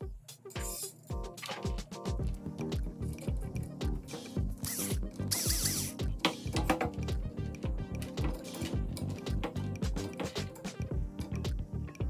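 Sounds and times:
background music with steady beat: 0.0 - 12.0
electric screwdriver whirring: 4.6 - 6.0.

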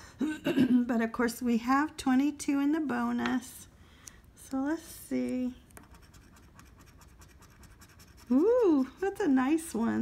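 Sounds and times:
scratch-off ticket being scratched: 5.8 - 8.9.

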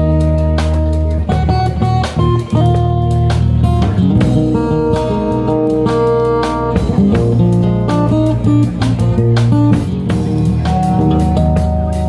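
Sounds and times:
acoustic guitar: 0.0 - 12.0
drum kit and cymbals: 0.0 - 12.0
electric bass guitar: 0.0 - 12.0.

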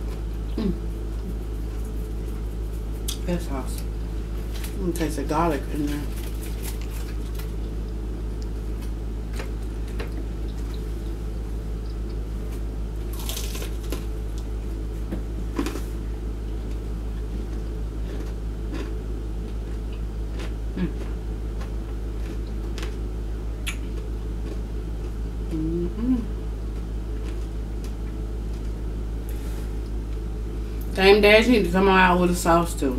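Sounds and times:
low electrical hum: 0.0 - 32.9
noisy crunch: 12.5 - 14.5, 17.4 - 23.0.

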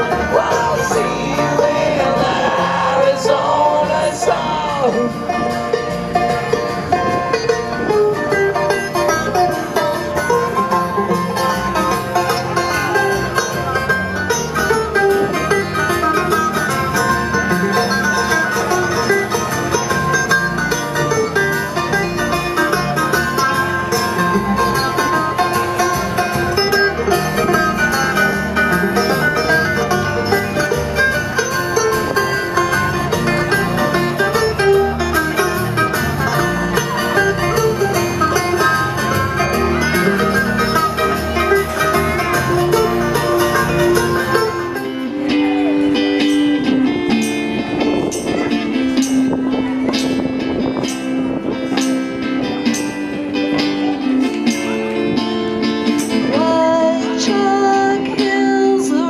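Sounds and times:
acoustic guitar: 0.0 - 59.0
banjo: 0.0 - 59.0
mandolin: 0.0 - 59.0
upright bass: 0.0 - 59.0.

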